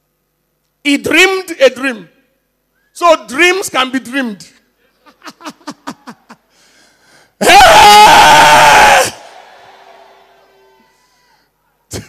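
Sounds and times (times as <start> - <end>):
man shouting into microphone: 0.9 - 2.1, 3.0 - 4.5, 7.4 - 9.2.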